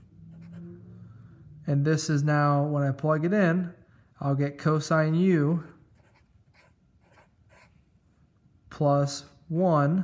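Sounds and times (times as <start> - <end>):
marker pen scratching on paper: 0.0 - 0.6, 5.7 - 7.9.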